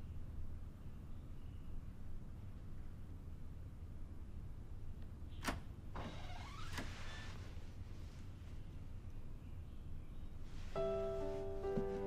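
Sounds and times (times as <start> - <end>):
door hinge creaking: 5.4 - 7.4.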